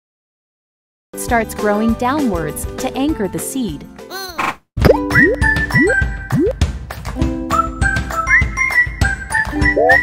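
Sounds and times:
light children's background music: 1.2 - 10.0.

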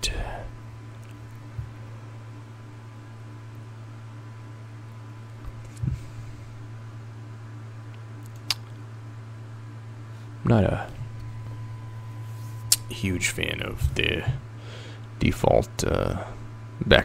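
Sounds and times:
computer hum: 0.0 - 17.0.

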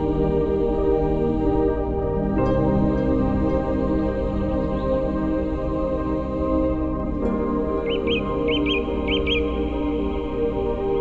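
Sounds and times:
soft ambient music: 0.0 - 11.0
bird chirping: 7.7 - 9.8.

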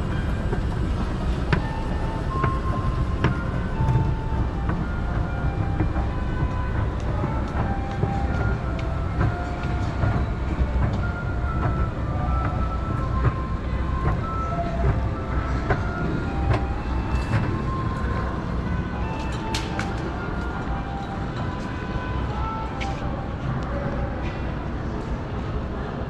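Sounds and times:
moving walkway rumbling: 0.0 - 26.0
light clicks of moving pallets: 0.2 - 18.3, 18.9 - 24.4.

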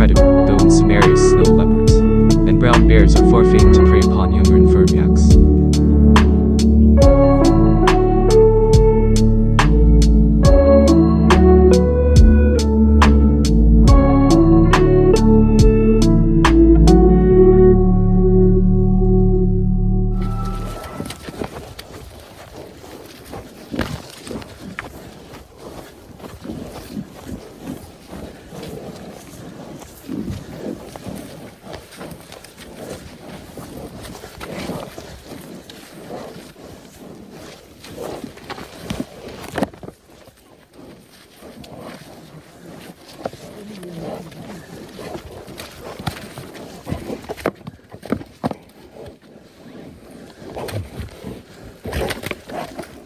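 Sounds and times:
knocks of horns and hooves: 0.0 - 17.4, 20.1 - 53.0
yaks scuffling: 20.1 - 53.0.

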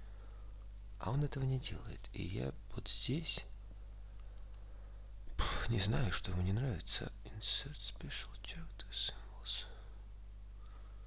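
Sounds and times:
low steady hum: 0.0 - 11.0
man whispering: 1.0 - 3.6, 5.2 - 10.0.

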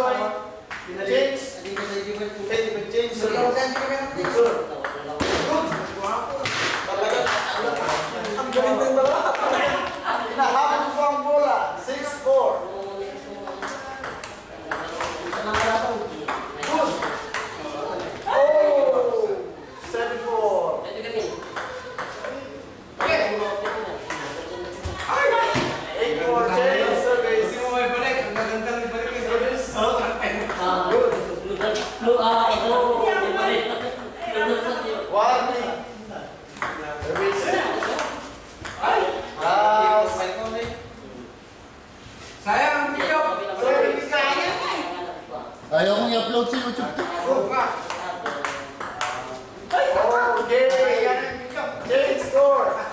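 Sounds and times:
people talking and calling out: 0.0 - 52.9.

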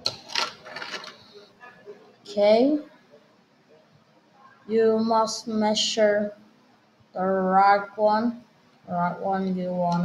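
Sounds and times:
plastic pieces clattering: 0.0 - 1.2
plastic pieces rattling: 0.0 - 1.2.

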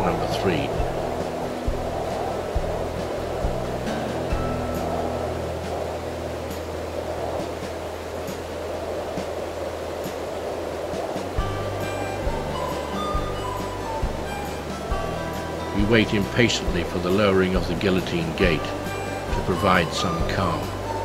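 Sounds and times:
background music low notes: 0.0 - 21.0
rushing water: 0.0 - 21.0.

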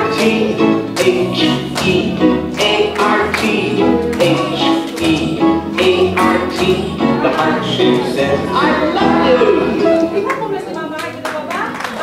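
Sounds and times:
young children singing: 0.0 - 10.0
children's song with instruments: 0.0 - 10.4.

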